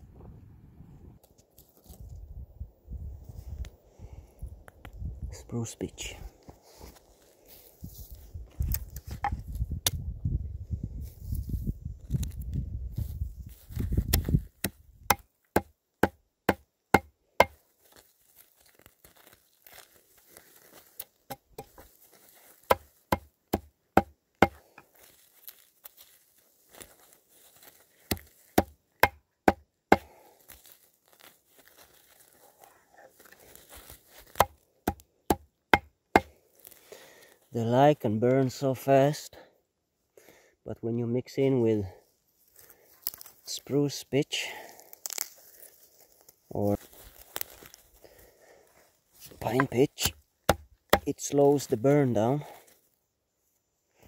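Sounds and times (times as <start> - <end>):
knife chopping on wood: 14.1 - 17.6, 22.7 - 24.6, 28.1 - 30.1, 34.3 - 36.3, 49.6 - 51.1.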